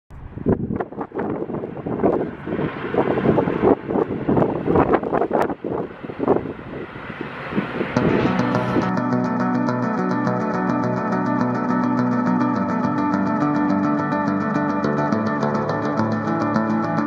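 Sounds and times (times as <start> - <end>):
wind buffeting microphone: 0.1 - 9.0.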